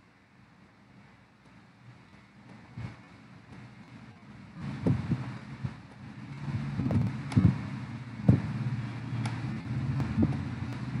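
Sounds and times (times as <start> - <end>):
low rumble with hum: 1.0 - 11.0.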